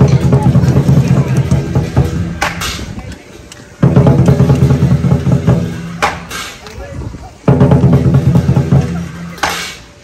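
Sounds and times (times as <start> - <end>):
lion drum beaten rapidly: 0.0 - 2.5, 3.8 - 6.2, 7.4 - 9.6.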